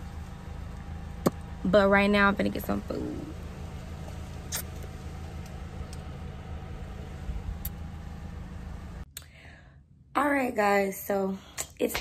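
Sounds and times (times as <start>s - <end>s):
car engine rumble from inside: 0.0s - 12.0s.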